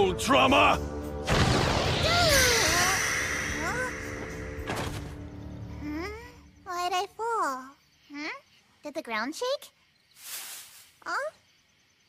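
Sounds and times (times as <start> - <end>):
background music: 0.0 - 6.7
rumbling whoosh with hissing shimmer: 1.5 - 4.6
girl's startled cries: 2.0 - 4.0.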